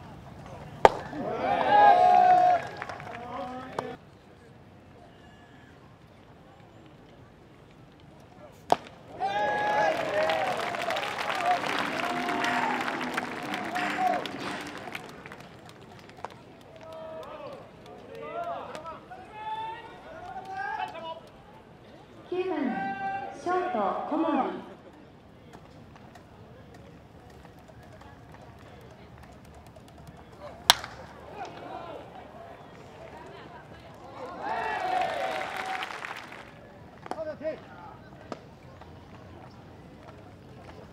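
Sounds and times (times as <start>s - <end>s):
baseball hitting glove crack: 0.8s - 1.2s, 8.7s - 9.1s, 30.6s - 31.7s
bat cracking a baseball: 0.8s - 1.3s, 8.7s - 16.4s, 30.6s - 31.7s
crowd shouting and cheering: 0.9s - 3.3s, 9.1s - 21.1s, 22.6s - 24.1s, 30.8s - 36.6s.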